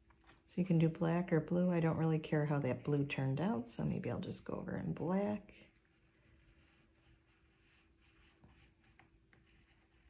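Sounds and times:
pencil scratching on paper: 5.9 - 10.0.

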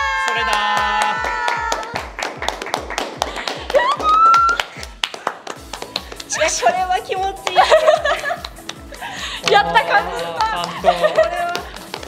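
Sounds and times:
person cheering: 0.0 - 2.0, 3.7 - 4.7
background music with beat: 0.0 - 12.0
people clapping: 0.0 - 12.0.

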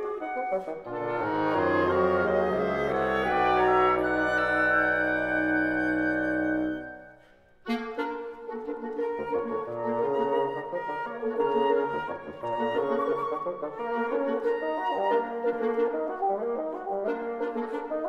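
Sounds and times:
wind quintet playing: 0.0 - 18.0.

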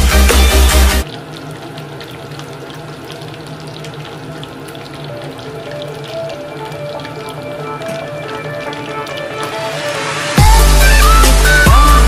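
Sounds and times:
chicken deep-frying in oil: 0.0 - 12.0.

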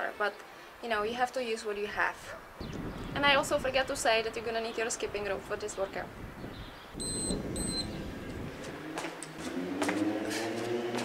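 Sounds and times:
short high beeps: 7.0 - 8.0.

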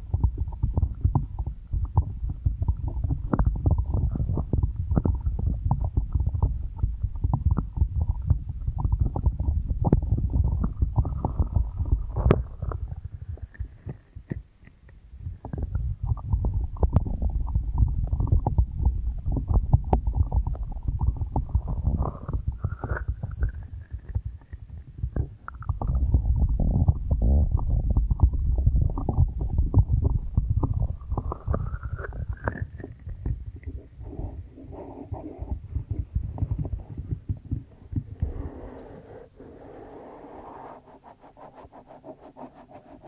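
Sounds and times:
hands rubbing and patting microphone: 0.3 - 28.3, 28.9 - 43.0.

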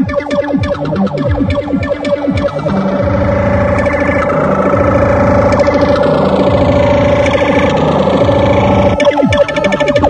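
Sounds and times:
falling synth sweep: 0.0 - 10.0
loud tekno music: 0.0 - 10.0.

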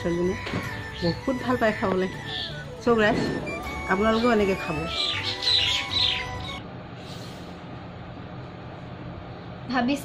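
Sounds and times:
small birds chirping: 0.0 - 6.6.

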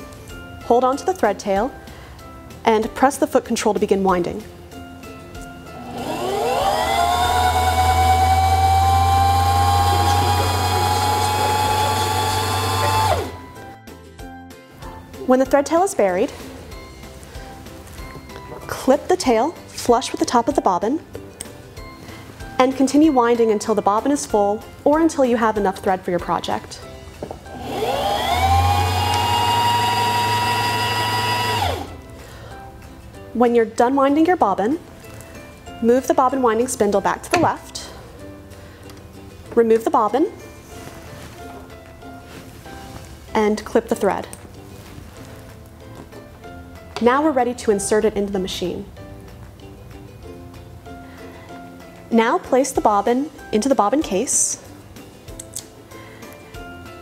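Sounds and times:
sewing machine motor whine: 5.8 - 13.4, 27.6 - 31.9.

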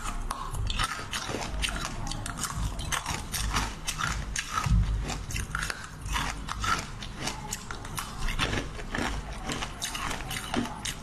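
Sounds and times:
chewing crunchy candy: 0.0 - 11.0.

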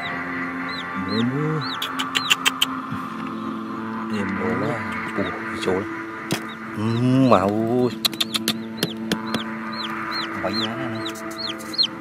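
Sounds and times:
chicken peeping: 0.0 - 12.0
sharp clicks: 8.0 - 10.0.

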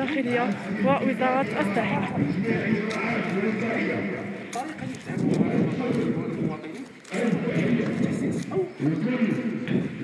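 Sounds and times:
footsteps on pavement: 0.0 - 10.0
indistinct men's voices: 0.3 - 10.0.

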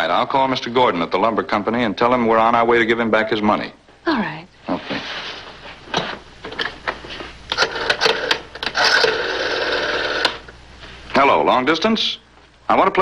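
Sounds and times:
telephone line tone: 7.6 - 10.4.

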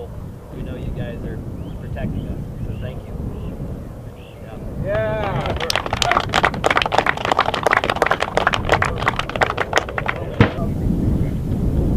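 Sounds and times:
people applauding: 4.9 - 10.6.

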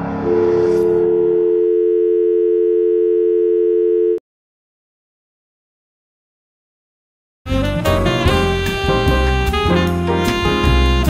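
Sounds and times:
two-tone electronic signal: 0.2 - 4.2
background music: 7.5 - 11.0.

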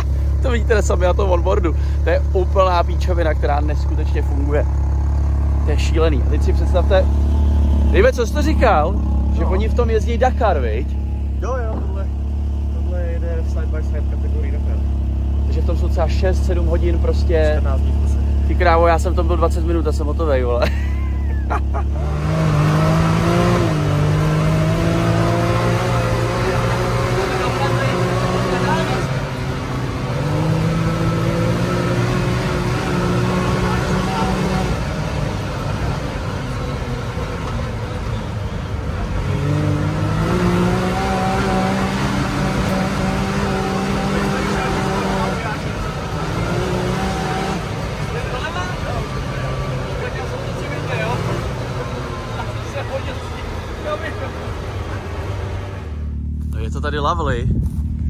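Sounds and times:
engine revving under hard driving: 0.0 - 58.0.

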